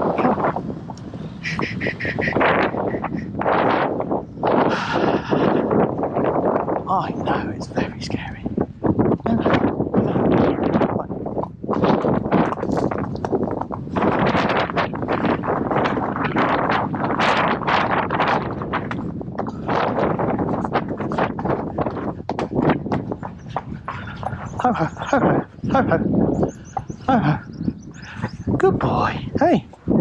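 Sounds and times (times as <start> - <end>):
hooves on tarmac: 0.0 - 30.0
wind on microphone: 0.0 - 30.0.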